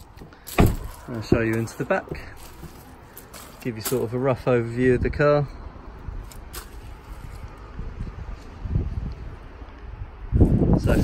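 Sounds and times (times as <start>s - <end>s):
man speaking: 1.0s - 2.4s, 3.5s - 5.5s
wind rumble on microphone: 4.8s - 11.0s.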